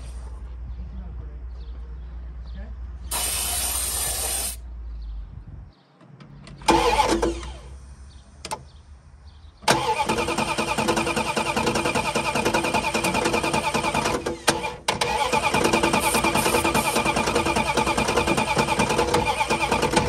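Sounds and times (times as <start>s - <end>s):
car engine cranking and firing: 6.1s - 7.8s, 9.6s - 20.0s.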